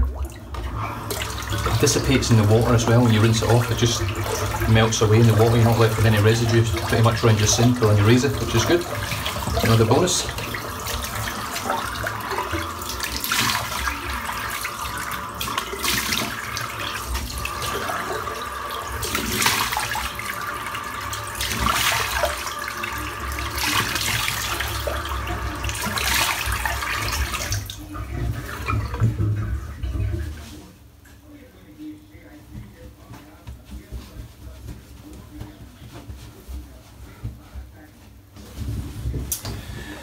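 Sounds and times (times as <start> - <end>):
tap running into sink: 0.0 - 30.5.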